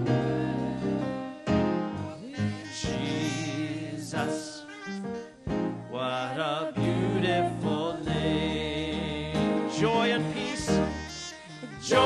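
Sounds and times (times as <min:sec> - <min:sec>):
keyboard and band accompaniment: 0:00.0 - 0:02.3, 0:05.4 - 0:06.0.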